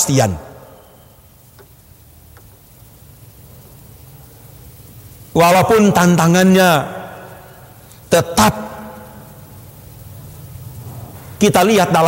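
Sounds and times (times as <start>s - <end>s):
room tone hiss: 0.0s - 12.0s
faint ticks: 1.4s - 5.2s.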